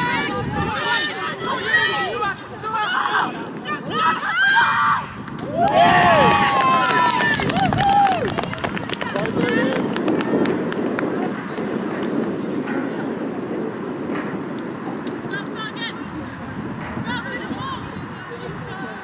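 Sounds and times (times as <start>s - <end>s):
women cheering and shouting: 0.0s - 9.8s
chatter: 0.0s - 19.0s.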